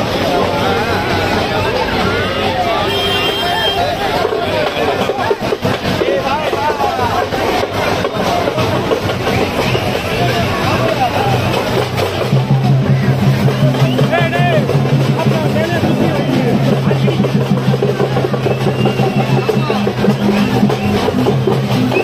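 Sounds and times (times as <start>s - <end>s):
voices: 0.0s - 22.0s
fast dense drumming: 3.8s - 22.0s.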